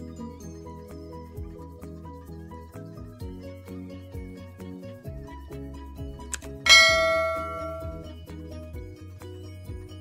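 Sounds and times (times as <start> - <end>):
background music with steady beat: 0.0 - 10.0
loud bell-like ding: 6.7 - 8.1.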